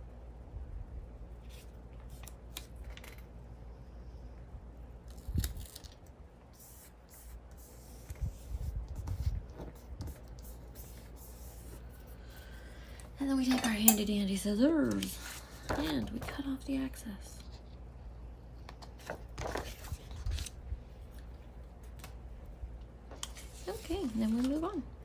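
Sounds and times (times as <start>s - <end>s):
paper rustling: 18.8s - 21.3s, 23.1s - 24.8s.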